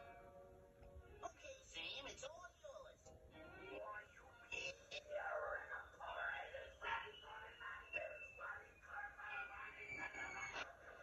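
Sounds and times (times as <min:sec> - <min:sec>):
cartoon voice from television: 0:01.1 - 0:11.0.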